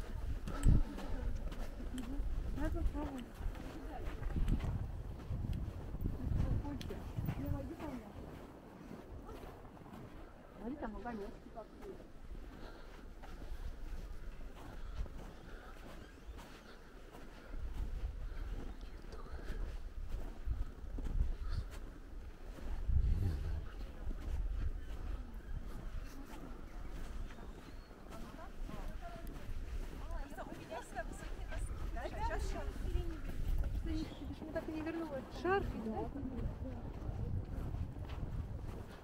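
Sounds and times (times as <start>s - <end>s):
people talking nearby: 0.0s - 4.9s, 5.5s - 21.9s, 22.5s - 38.8s
wind rumble on microphone: 0.0s - 10.4s, 13.4s - 39.0s.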